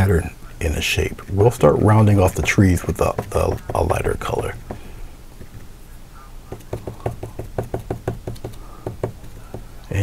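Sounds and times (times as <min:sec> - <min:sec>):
paintbrush tapping on canvas: 0:02.4 - 0:05.6, 0:06.5 - 0:09.7.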